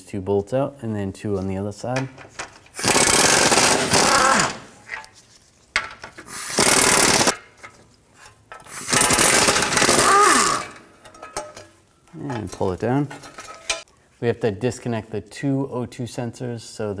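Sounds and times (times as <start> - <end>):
pneumatic impact wrench hammering: 2.7 - 4.7, 6.2 - 7.5, 8.6 - 11.5.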